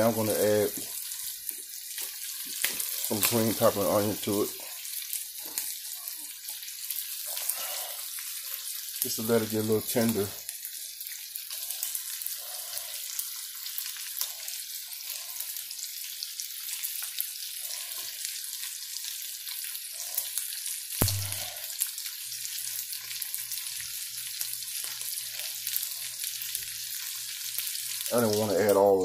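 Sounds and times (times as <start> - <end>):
sausage and vegetables sizzling: 0.0 - 29.0
sharp knock: 21.0 - 21.4.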